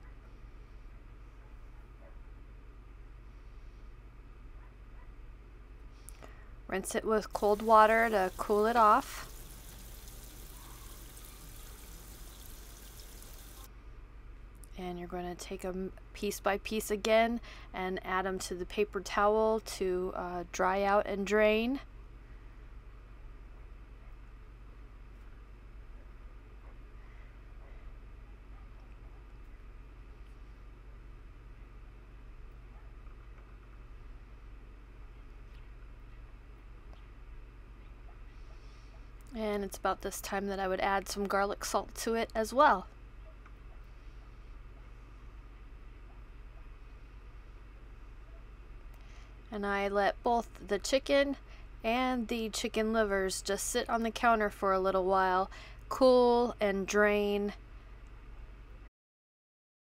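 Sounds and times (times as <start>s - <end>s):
steady low hum: 0.0s - 58.9s
tap water spraying into colander: 7.4s - 13.7s.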